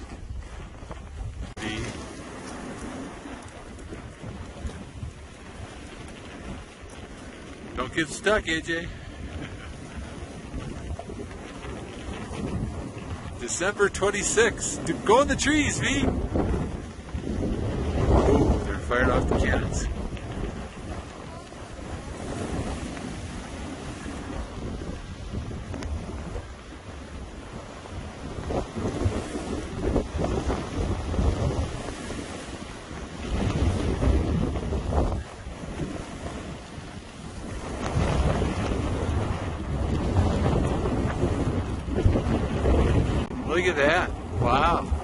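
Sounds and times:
wind buffeting microphone: 0.0s - 45.0s.

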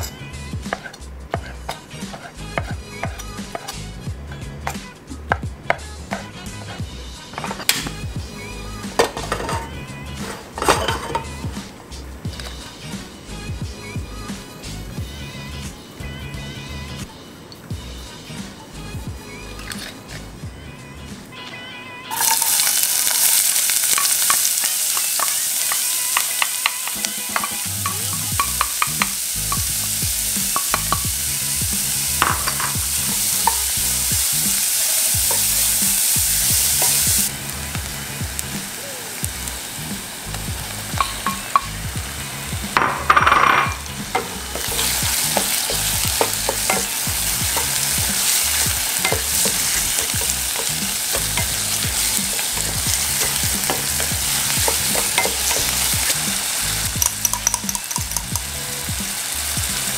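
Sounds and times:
wooden spoon stirring and scraping: 0.0s - 4.8s, 42.7s - 58.2s
rice sizzling in oil: 0.0s - 20.3s, 22.1s - 59.9s
squid hitting hot pan: 9.0s - 9.7s, 22.1s - 38.5s, 40.7s - 41.9s, 42.7s - 58.5s.

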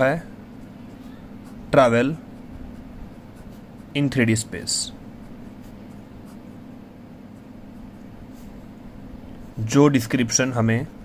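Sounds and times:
ballpoint pen scratching on paper: 0.0s - 8.6s.

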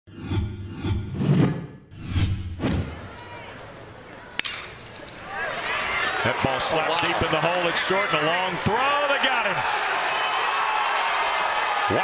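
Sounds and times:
whooshing intro sting: 0.1s - 2.9s
crowd noise: 2.7s - 12.0s
announcer speaking: 6.5s - 9.6s.

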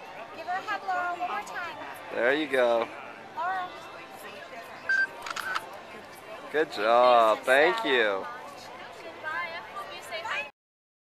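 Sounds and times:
camera shutter clicks: 5.2s - 5.6s.

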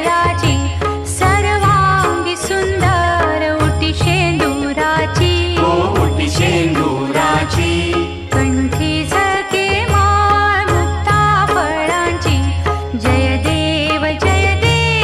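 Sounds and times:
person singing devotional song: 0.0s - 15.0s
steady percussion beat: 0.0s - 15.0s
low accompaniment: 3.8s - 11.5s.

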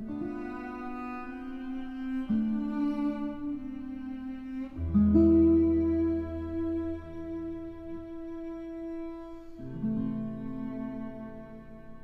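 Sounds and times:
cello bowing long notes: 0.0s - 12.0s
guitar playing: 0.0s - 12.0s.

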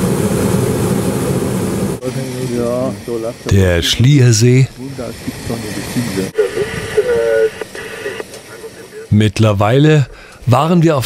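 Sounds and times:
steady hiss: 2.0s - 9.2s
people talking quietly: 2.0s - 9.4s.

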